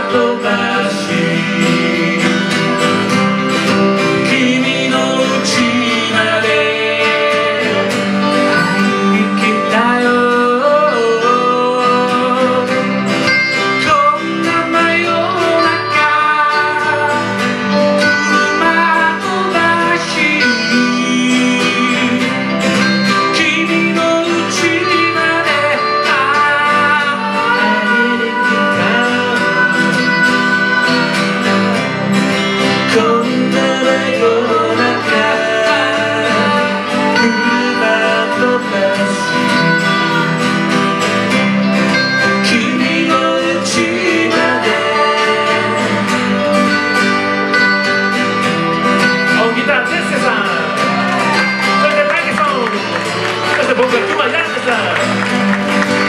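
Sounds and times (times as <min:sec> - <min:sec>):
person singing: 0:00.0 - 0:48.0
acoustic guitars: 0:00.0 - 0:56.0
electric guitar: 0:00.0 - 0:56.0.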